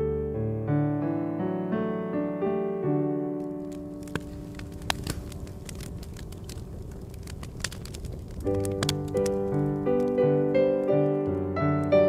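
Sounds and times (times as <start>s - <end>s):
piano music: 0.0s - 6.5s, 8.4s - 12.0s
campfire crackling and popping: 3.4s - 12.0s.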